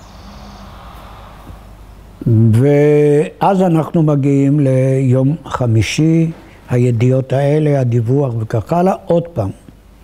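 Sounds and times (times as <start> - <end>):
background room noise: 0.0 - 10.0.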